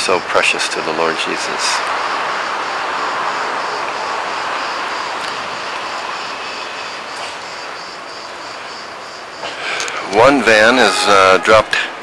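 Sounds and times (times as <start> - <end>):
distant engine roar: 0.0 - 12.0.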